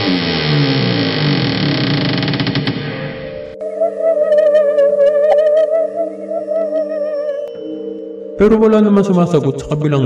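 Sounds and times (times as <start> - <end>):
droning horror music: 0.0 - 7.6.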